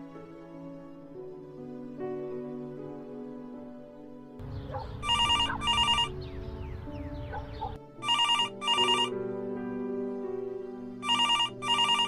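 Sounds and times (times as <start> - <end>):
soft background music: 0.0 - 12.0
low street noise: 4.4 - 7.8
telephone bell ringing: 5.1 - 6.1, 8.0 - 9.2, 11.0 - 12.0.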